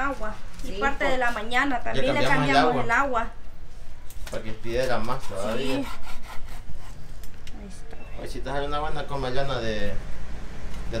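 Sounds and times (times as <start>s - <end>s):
knife sawing through dried fish: 4.8s - 7.0s.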